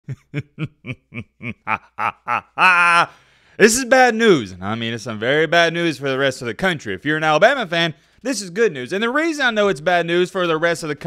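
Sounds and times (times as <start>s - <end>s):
man laughing: 0.0s - 3.2s.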